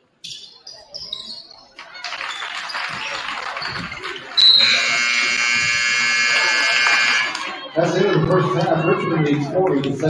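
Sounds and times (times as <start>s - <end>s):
scoreboard buzzer: 4.4s - 7.4s.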